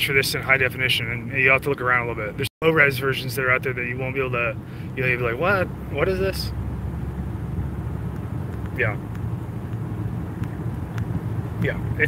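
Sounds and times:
low vehicle rumble in cabin: 0:00.0 - 0:12.0.

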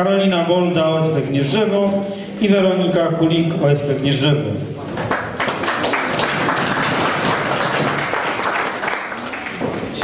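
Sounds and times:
audience applauding: 0:05.0 - 0:10.0.

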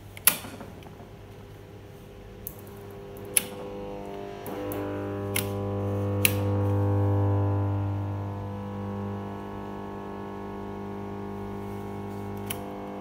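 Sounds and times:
radio speaker hum: 0:00.5 - 0:13.0.

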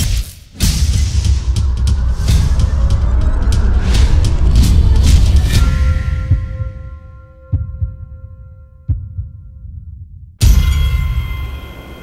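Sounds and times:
deep low thuds: 0:00.6 - 0:10.6
ringing sustained chord: 0:10.6 - 0:12.0.

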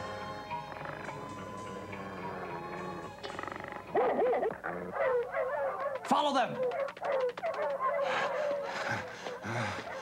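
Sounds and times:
cartoon dog whining and yelping: 0:03.9 - 0:06.0.

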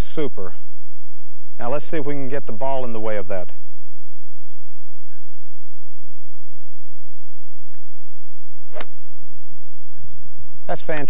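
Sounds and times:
low steady background noise: 0:00.0 - 0:11.0
golf club striking ball: 0:08.6 - 0:09.2.

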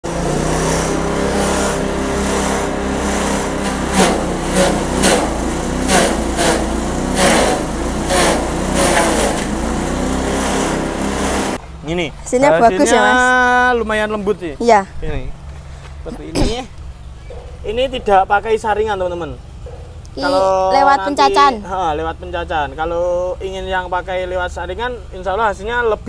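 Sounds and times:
forage chopper engine running: 0:00.0 - 0:14.4
blades chopping corn stalk: 0:00.1 - 0:11.6.

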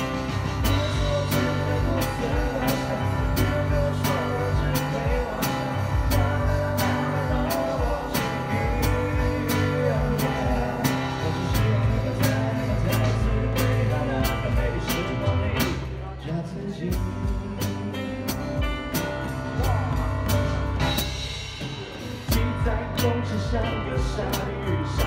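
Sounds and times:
drum kit steady beat: 0:00.0 - 0:25.0
live band playing: 0:00.0 - 0:25.0.

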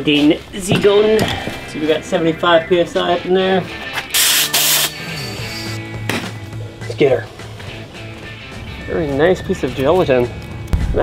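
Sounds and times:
background music with low notes: 0:00.0 - 0:11.0
compressed air hissing: 0:04.1 - 0:05.8.

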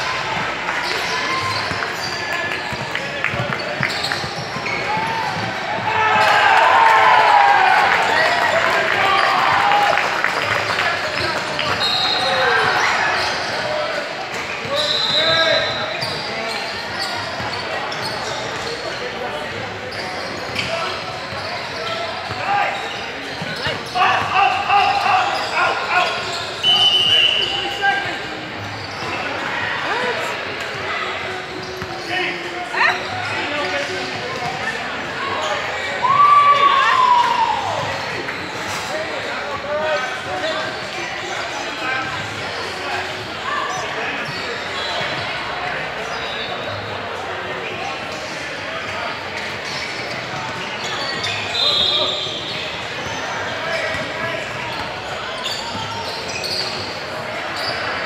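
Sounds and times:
shoe squeaks: 0:00.8 - 0:05.5, 0:11.6 - 0:13.8, 0:14.5 - 0:19.2, 0:19.8 - 0:30.0, 0:43.1 - 0:46.9, 0:49.4 - 0:58.0.

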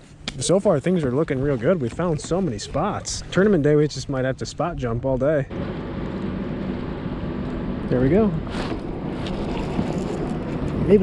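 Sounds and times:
water lapping: 0:00.7 - 0:04.1, 0:08.5 - 0:10.8.

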